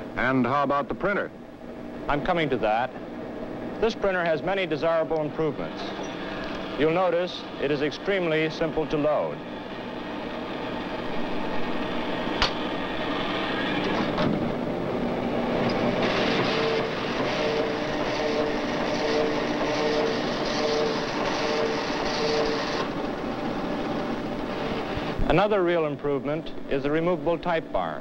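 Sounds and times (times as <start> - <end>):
line printer mechanical chatter: 3.8 - 10.2, 15.0 - 25.1
sharp click: 12.4 - 12.6.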